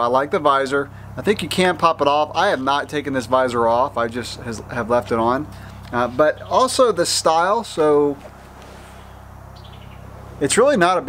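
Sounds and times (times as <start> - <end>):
low background hum: 0.0 - 11.0
faint bird trill: 8.9 - 10.1.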